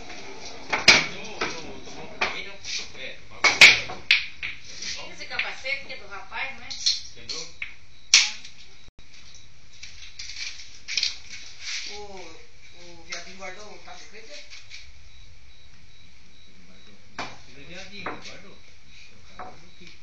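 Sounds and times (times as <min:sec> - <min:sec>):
pool balls clacking: 0:00.0 - 0:02.4, 0:03.4 - 0:04.7
muffled voices talking: 0:01.0 - 0:04.0.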